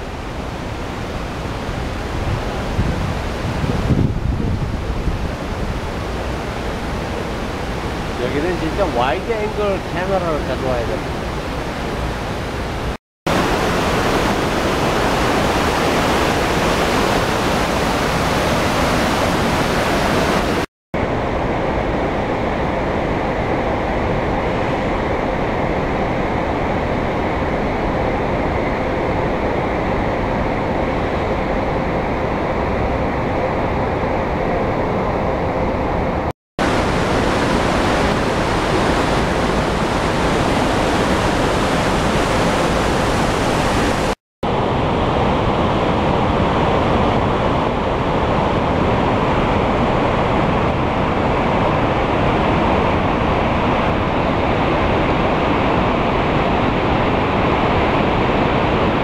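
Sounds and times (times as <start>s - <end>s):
rushing mountain stream: 0.0s - 27.4s, 36.6s - 59.0s.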